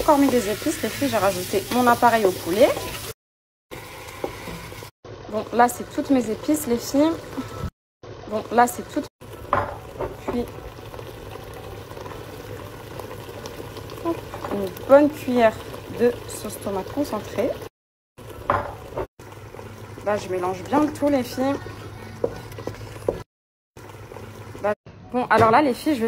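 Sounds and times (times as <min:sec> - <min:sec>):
woman's voice: 0:00.0 - 0:02.9, 0:05.3 - 0:07.6, 0:08.3 - 0:09.1, 0:20.0 - 0:22.1, 0:24.6 - 0:26.0
soup bubbling in a pot: 0:08.9 - 0:24.7.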